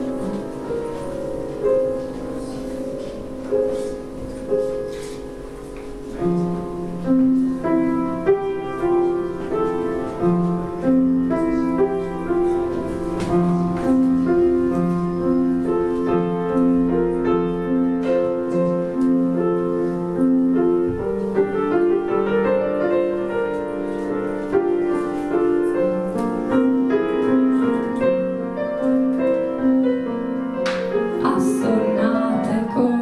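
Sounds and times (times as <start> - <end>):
piano keyboard playing: 0.0 - 33.0.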